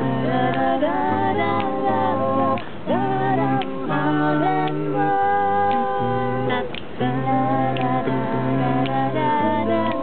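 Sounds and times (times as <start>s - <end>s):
sung bass line: 0.0s - 10.0s
vocal group humming chords: 0.0s - 10.0s.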